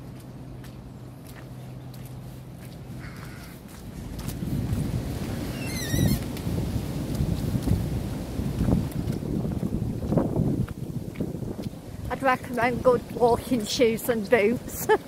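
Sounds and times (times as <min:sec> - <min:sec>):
wind buffeting microphone: 0:02.9 - 0:15.0.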